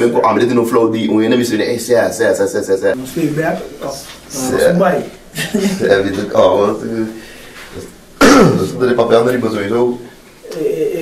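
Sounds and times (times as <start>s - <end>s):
person making wordless voiced sounds: 10.4s - 11.0s.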